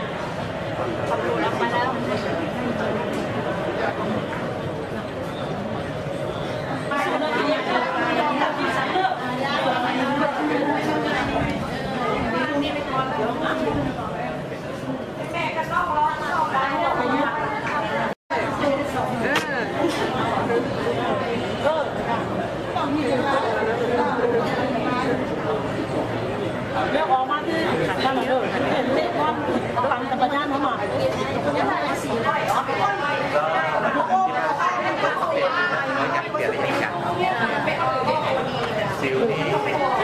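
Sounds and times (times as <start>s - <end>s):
indistinct chatter of voices: 0.0s - 40.0s.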